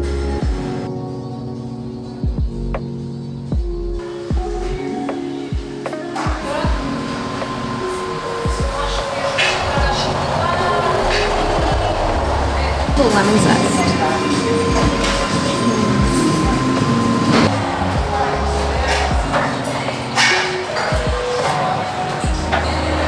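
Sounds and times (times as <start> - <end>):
instrumental music with bass line: 2.2 - 4.9, 14.6 - 19.4.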